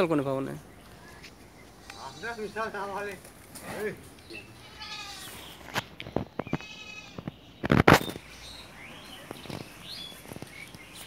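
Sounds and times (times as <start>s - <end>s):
farm animal bleating: 1.8s - 3.1s, 4.3s - 5.6s, 6.4s - 7.3s.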